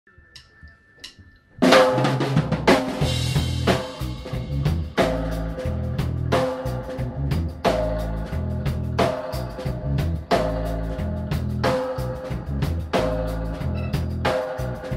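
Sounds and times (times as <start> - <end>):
dub reggae band: 1.6 - 14.9.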